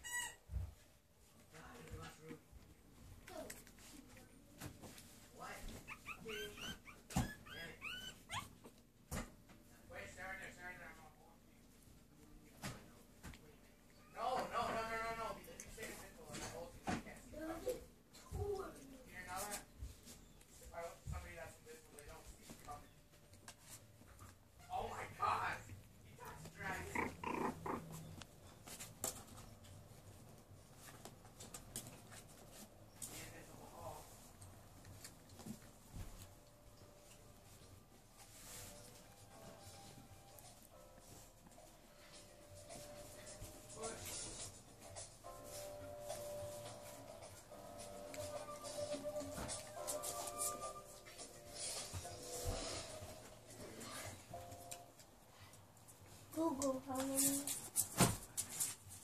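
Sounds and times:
puppies whimpering: 5.9 - 8.6, 26.9 - 28.2
dog vocalisation: 26.8 - 28.1.

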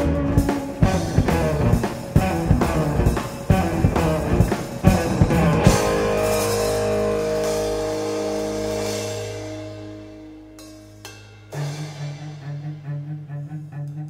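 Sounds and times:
crash of drums and guitar: 0.0 - 10.9
held chord ringing out: 3.0 - 11.8.

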